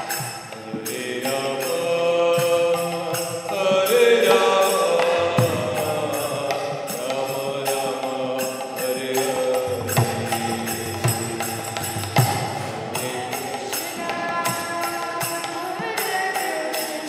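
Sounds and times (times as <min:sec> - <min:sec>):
hand cymbals ringing: 0:00.0 - 0:17.0
person chanting: 0:00.0 - 0:17.0.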